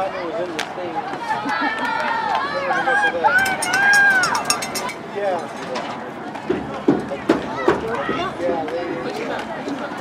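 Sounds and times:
spectators yelling: 1.2s - 5.0s.

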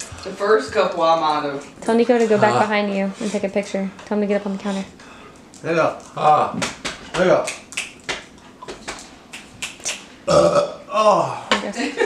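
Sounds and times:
man burping: 10.2s - 11.5s.

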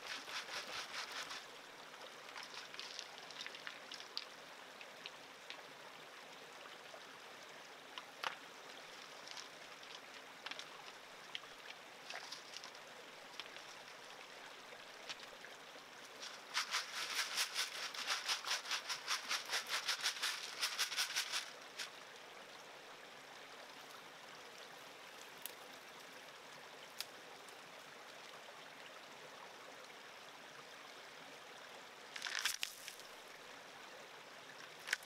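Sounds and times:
gravel rattling in a sieve: 0.0s - 1.5s, 2.3s - 4.3s, 16.1s - 21.9s, 32.2s - 33.0s
creek running: 0.0s - 35.0s
stones clicking: 2.3s - 4.3s, 32.2s - 33.0s.

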